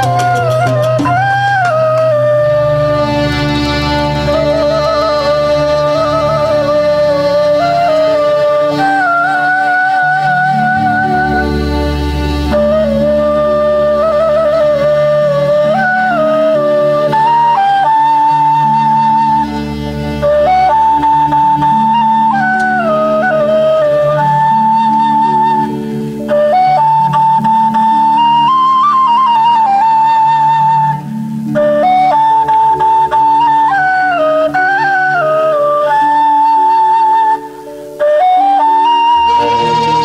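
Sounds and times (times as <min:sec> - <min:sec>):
low sustained accompaniment: 0:00.0 - 0:40.0
solo flute melody: 0:00.0 - 0:40.0.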